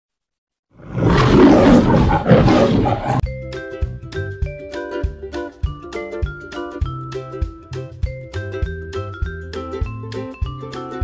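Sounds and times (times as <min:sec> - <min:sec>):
lion roar: 0:00.8 - 0:03.2.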